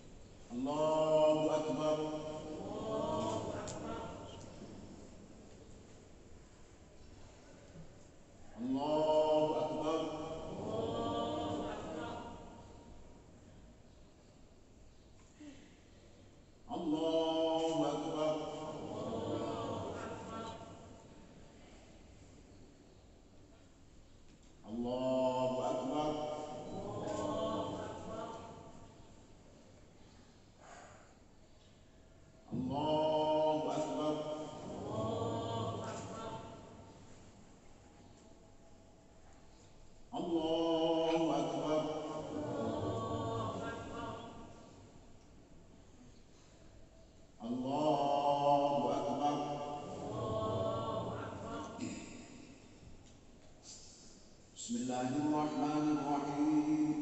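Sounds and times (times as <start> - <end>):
man chanting through microphone: 0.0 - 5.4, 7.3 - 13.6, 16.5 - 22.2, 24.5 - 29.4, 32.0 - 37.4, 40.0 - 45.1, 47.0 - 52.8, 53.6 - 57.0.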